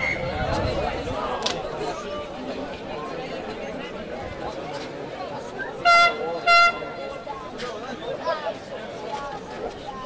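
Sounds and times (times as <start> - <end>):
horn blasts: 5.8 - 7.3.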